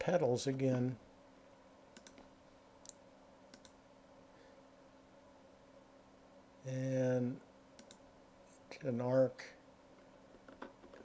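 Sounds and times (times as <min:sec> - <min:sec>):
faint electrical hum: 0:00.0 - 0:11.0
computer mouse clicks: 0:02.0 - 0:03.8, 0:07.8 - 0:08.0.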